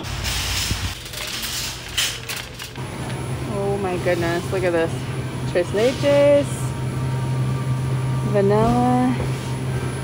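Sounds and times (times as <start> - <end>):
shopping cart rattling: 0.0 - 2.8.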